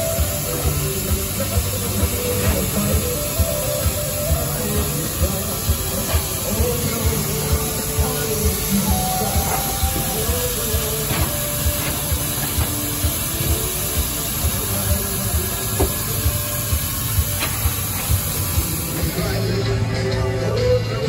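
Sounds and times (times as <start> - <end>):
faint music: 0.0 - 21.0
steam hiss: 0.0 - 21.0.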